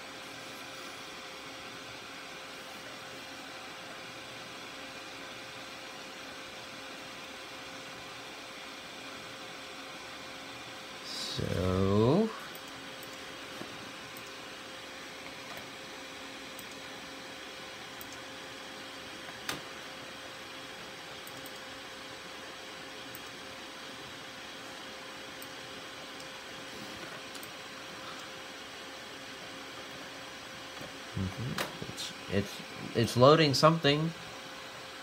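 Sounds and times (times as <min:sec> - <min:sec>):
computer cooling fans humming: 0:00.0 - 0:35.0.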